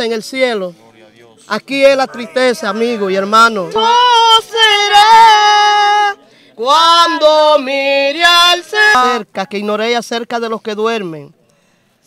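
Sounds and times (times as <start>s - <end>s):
high voice singing a hymn: 1.5s - 10.0s.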